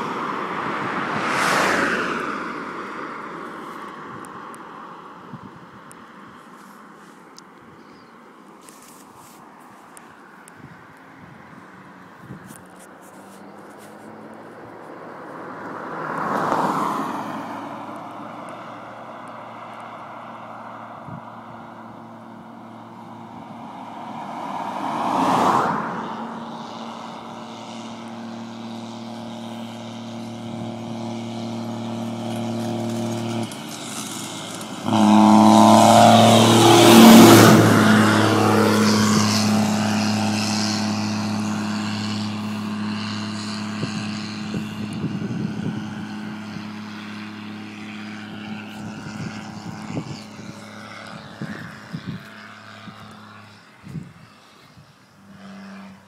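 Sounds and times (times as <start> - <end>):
car passing quickly: 0.0 - 5.7, 10.6 - 56.0
diesel tractor engine passing: 11.0 - 56.0.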